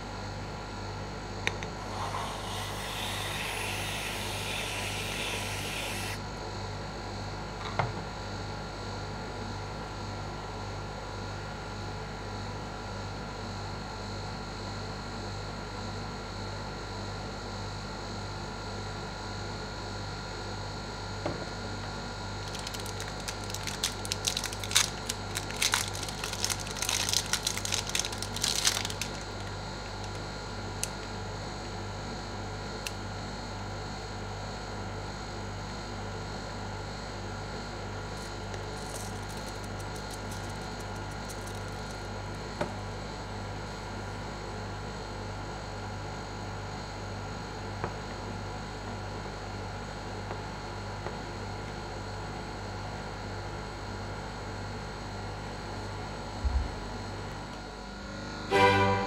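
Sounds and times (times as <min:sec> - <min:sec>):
refrigeration unit humming: 0:00.0 - 0:11.0, 0:20.3 - 0:46.3
crackly rustling and clicks: 0:22.4 - 0:31.0, 0:38.2 - 0:42.1.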